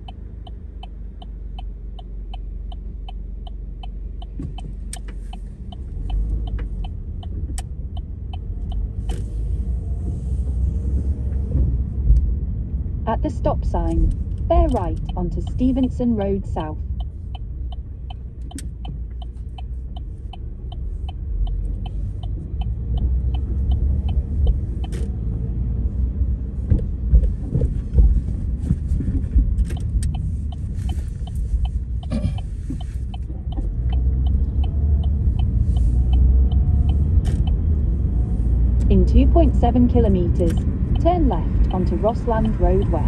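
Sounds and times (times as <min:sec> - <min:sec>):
car engine and tyre rumble: 0:00.0 - 0:43.0
turn signal ticking: 0:00.0 - 0:43.0.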